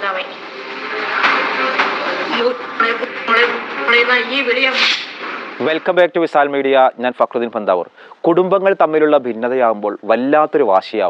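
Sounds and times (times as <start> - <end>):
woman talking agitatedly: 2.2 - 5.0.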